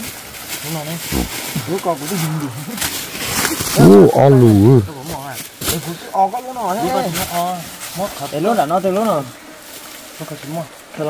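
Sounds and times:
man's loud drawn-out exclamation: 3.8s - 5.0s.

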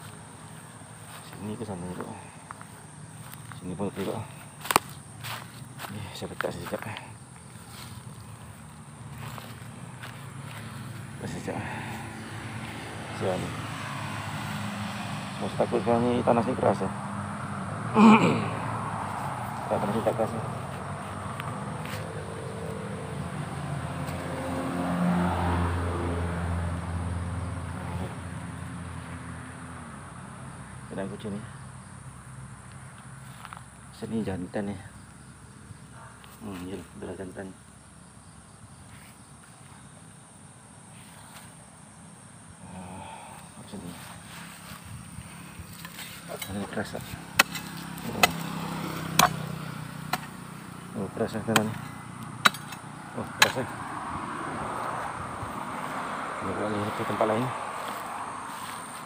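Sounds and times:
vehicle engine humming: 0.0s - 59.0s
hoe chopping into hard soil: 45.7s - 50.4s, 51.4s - 53.7s.

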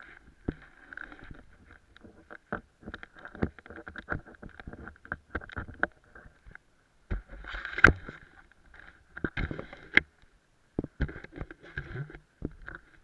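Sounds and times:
ski gear clicks and knocks: 0.0s - 13.0s.

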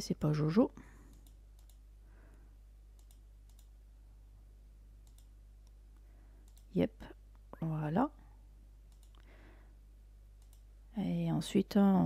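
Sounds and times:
low steady hum: 0.0s - 12.0s
computer mouse clicks: 1.1s - 1.8s, 2.9s - 3.8s, 5.0s - 5.8s, 6.4s - 6.7s, 8.9s - 9.3s, 10.4s - 10.7s.

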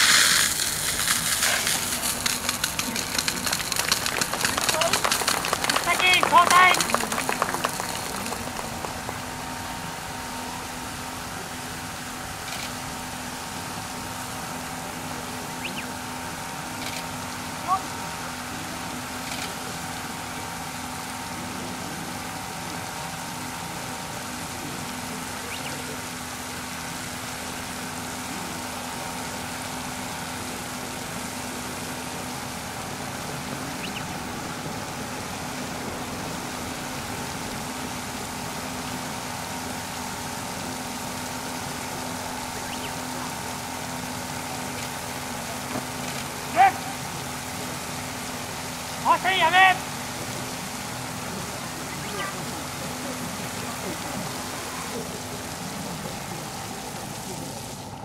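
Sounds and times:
pump engine running: 0.0s - 58.0s
water jets spraying: 0.0s - 58.0s.

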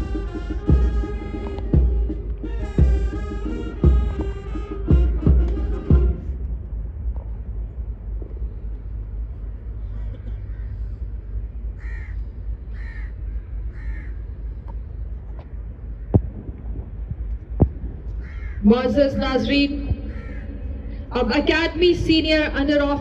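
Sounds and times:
steady low rumble: 0.0s - 23.0s
crow cawing: 10.0s - 11.0s, 11.8s - 14.2s, 18.2s - 18.7s, 19.9s - 21.0s.

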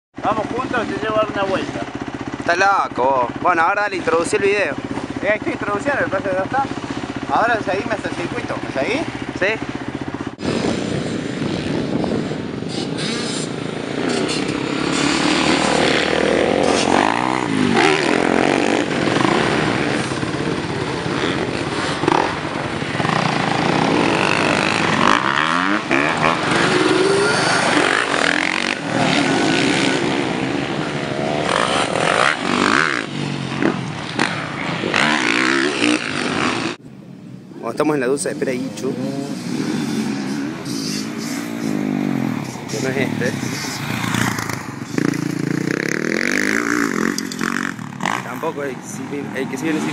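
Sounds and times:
dirt bike engine revving: 0.2s - 36.8s, 38.1s - 49.9s.

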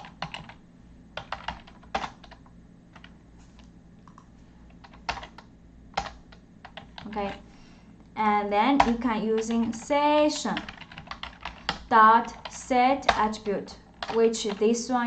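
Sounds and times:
typing on computer keyboard: 0.0s - 0.6s, 1.2s - 3.1s, 4.1s - 7.4s, 8.8s - 9.9s, 10.5s - 14.8s.

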